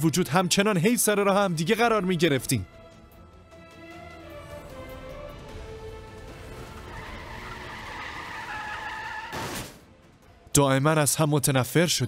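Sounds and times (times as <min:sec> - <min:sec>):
background music: 0:00.0 - 0:12.0
car tyres screeching: 0:06.4 - 0:09.8.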